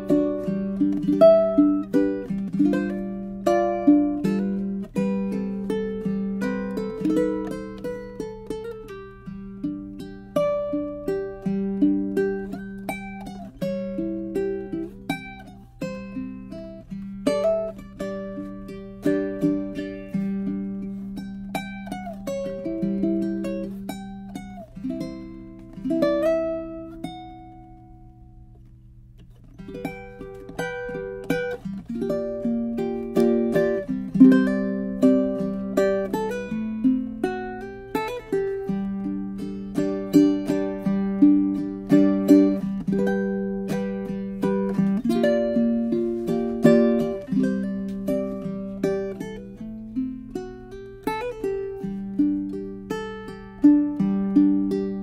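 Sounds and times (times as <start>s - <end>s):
fingerpicked ukulele melody: 0.0s - 55.0s.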